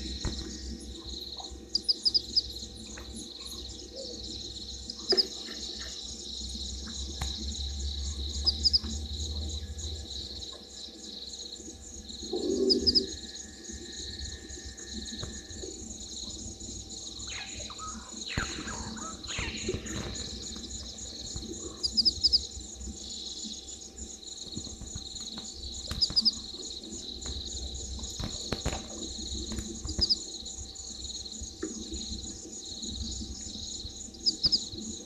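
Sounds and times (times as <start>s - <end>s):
insects chirring: 0.0s - 35.0s
bird chirps: 17.2s - 22.5s, 25.9s - 26.4s
falling calls: 17.3s - 20.5s.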